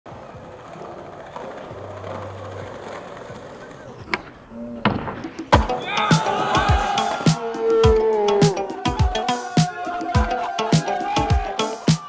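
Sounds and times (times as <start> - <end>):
skateboard wheels rolling on asphalt: 0.0 - 7.2
skateboard clacks: 0.1 - 6.3.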